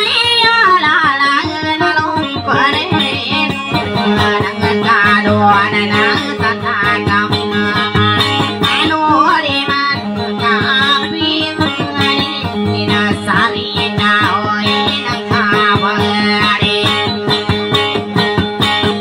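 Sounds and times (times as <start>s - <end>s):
person singing ornamented lines: 0.0s - 17.6s
acoustic guitar plucked melody: 0.0s - 19.0s.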